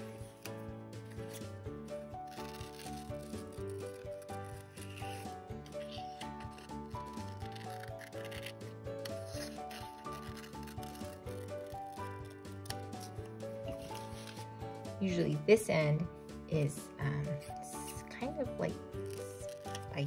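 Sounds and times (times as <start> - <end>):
background music: 0.0 - 20.0
scissors snipping paper: 2.2 - 14.5, 18.9 - 20.0.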